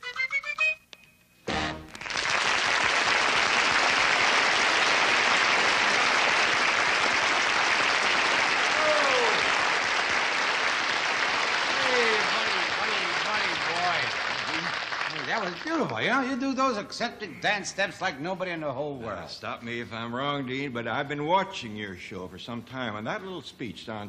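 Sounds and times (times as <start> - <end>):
audience applauding: 1.7 - 16.4.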